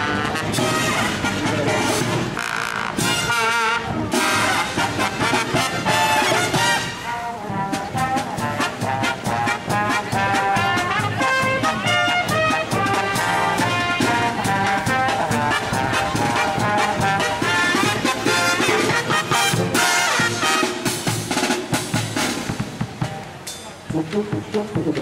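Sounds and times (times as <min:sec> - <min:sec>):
trumpets playing: 0:00.0 - 0:22.4
trombones playing: 0:00.0 - 0:22.5, 0:23.9 - 0:25.0
bass drum beats: 0:07.5 - 0:23.3, 0:23.9 - 0:25.0.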